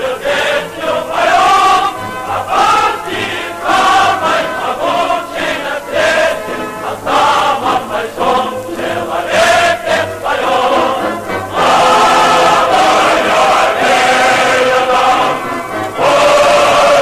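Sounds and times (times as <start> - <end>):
choir singing over music: 0.0 - 17.0.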